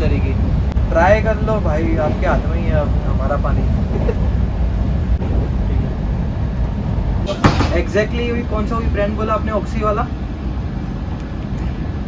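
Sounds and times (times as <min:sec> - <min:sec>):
train rumbling inside coach: 0:00.0 - 0:12.0.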